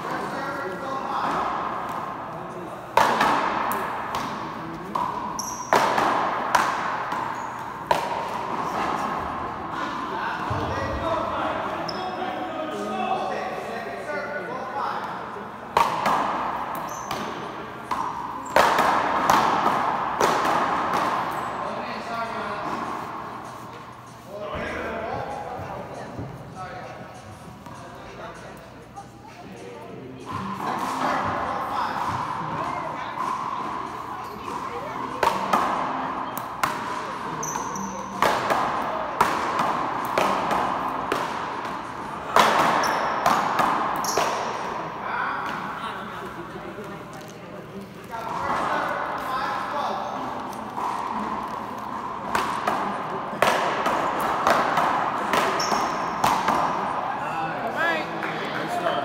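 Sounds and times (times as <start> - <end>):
background chatter: 0.0 - 59.0
ball cracking off paddles and wall: 2.9 - 9.4, 15.7 - 21.5, 33.2 - 44.8, 50.4 - 57.0.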